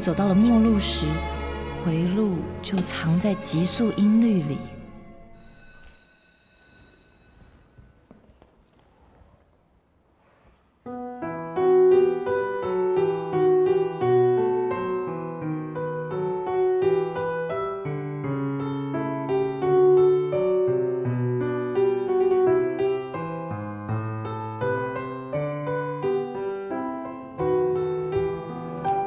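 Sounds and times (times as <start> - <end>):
faint high ringing tones: 5.2 - 8.4
solo piano music: 10.9 - 29.0.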